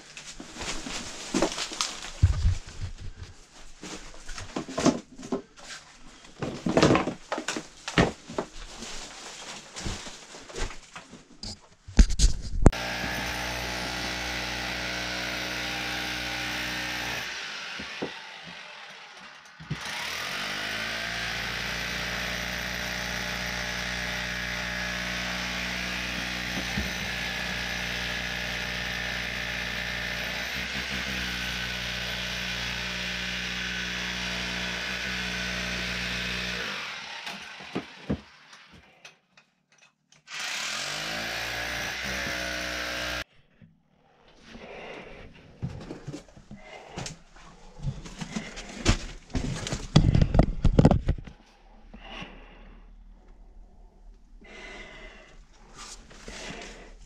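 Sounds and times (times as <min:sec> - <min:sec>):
hand-held power tool on rock: 0:12.7 - 0:39.0, 0:40.2 - 0:43.3, 0:56.3 - 0:56.9.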